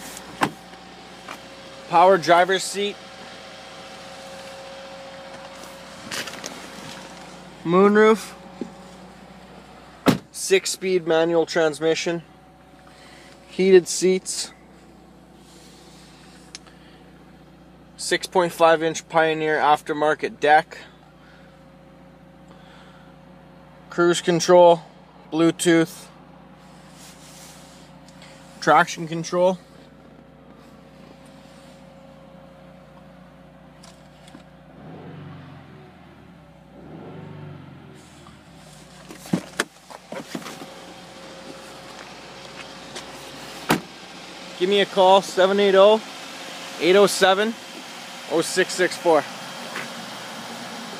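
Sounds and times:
low hum inside car cabin: 0.0s - 50.9s
car door opening and shutting: 0.1s - 1.5s, 10.0s - 10.3s, 38.8s - 44.0s.

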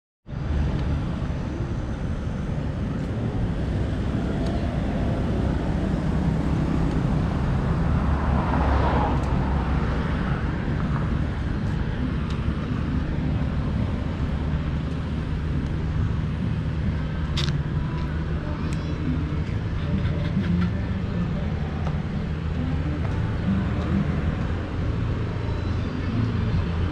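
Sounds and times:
outdoor background rumble: 0.3s - 26.9s.

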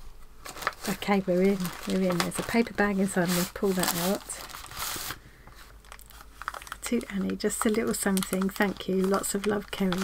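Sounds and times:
paper bag crinkling: 0.4s - 5.2s, 5.8s - 10.0s.

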